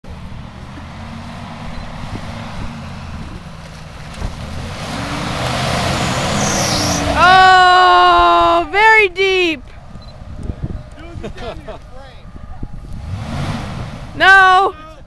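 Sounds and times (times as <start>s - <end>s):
engine revving: 0.0s - 14.6s
tyres churning through mud: 0.0s - 15.0s.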